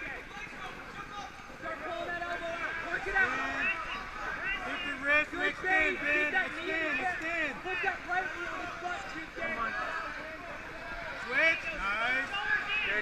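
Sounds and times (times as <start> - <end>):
voices shouting over each other: 0.0 - 13.0.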